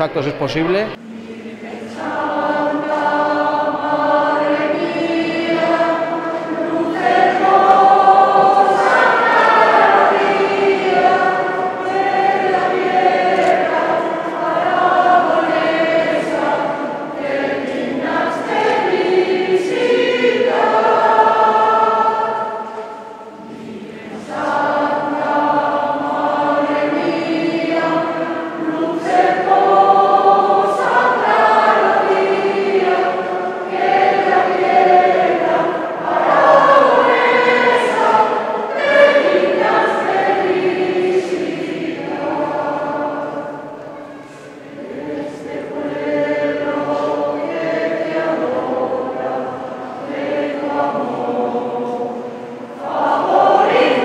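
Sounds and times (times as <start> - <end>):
choir singing a hymn: 0.1 - 54.0.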